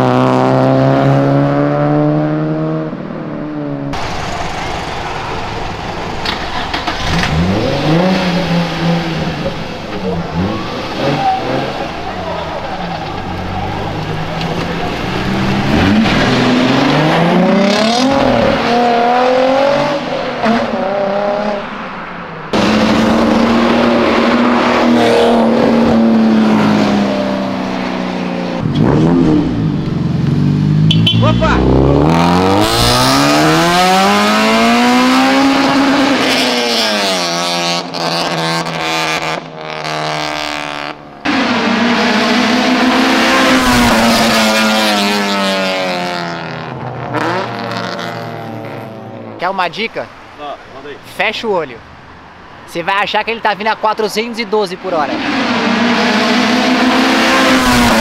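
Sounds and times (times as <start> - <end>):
car engine revving and accelerating: 0.0 - 49.4, 54.6 - 58.0.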